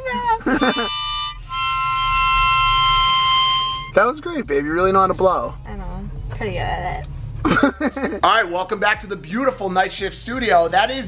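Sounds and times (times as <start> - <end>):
harmonica held chord: 0.4 - 4.2.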